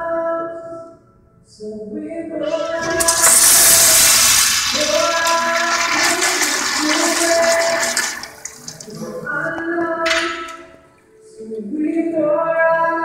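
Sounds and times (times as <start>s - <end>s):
background music with singing: 0.0s - 4.0s, 4.8s - 13.0s
toilet flushing: 2.4s - 10.8s.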